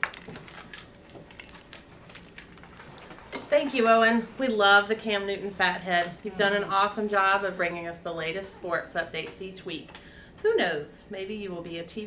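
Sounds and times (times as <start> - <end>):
small clicks and rustles: 0.0 - 3.9.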